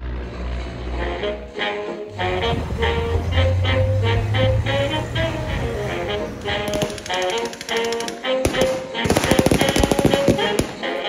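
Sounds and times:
background music with melody: 0.0 - 11.0
gunfire from blank weapons: 6.5 - 11.0.

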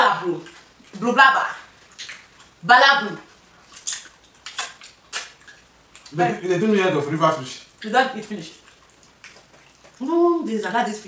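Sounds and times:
eating clicks and smacks: 1.8 - 2.6, 3.7 - 6.2, 8.6 - 10.0.

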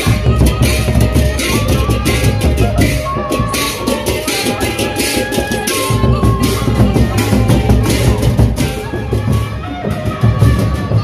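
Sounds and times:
large barrel drums beaten: 0.0 - 11.0.

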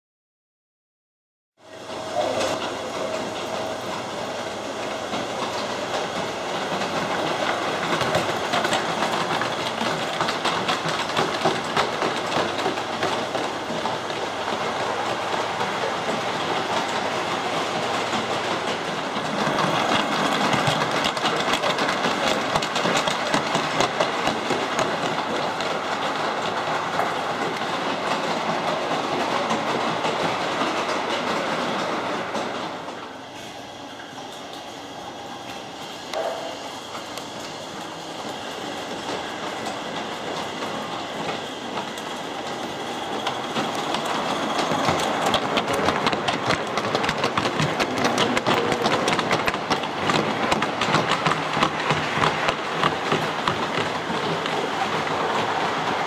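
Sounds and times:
model train wheels clattering: 2.2 - 33.2, 34.2 - 56.0.

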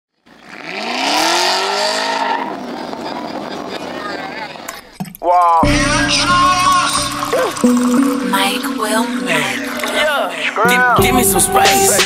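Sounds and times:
car engine revving: 0.1 - 5.0.

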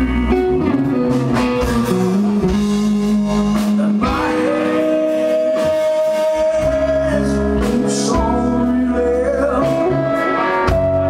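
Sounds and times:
bass guitar: 0.0 - 11.0
drums: 0.0 - 11.0
electric guitar long bending notes: 0.0 - 11.0.

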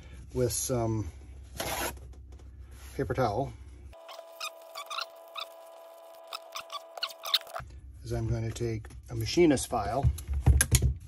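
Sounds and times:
tape squeaking off roll: 4.0 - 7.6.

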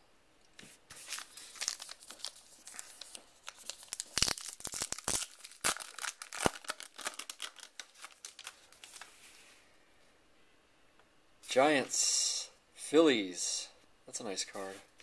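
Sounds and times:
paper wrapper tearing and crinkling: 0.9 - 9.1.

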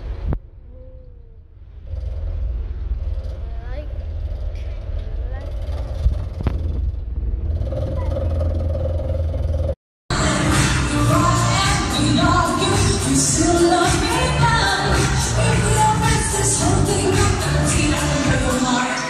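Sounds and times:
bus rumbling: 0.0 - 19.0
loud music with singing: 10.1 - 19.0.

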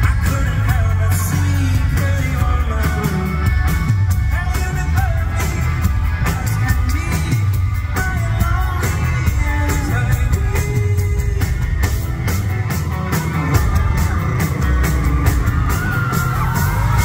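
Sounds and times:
man singing: 0.0 - 12.1
live rock band: 0.0 - 17.0
steady drum beat: 0.0 - 17.0.

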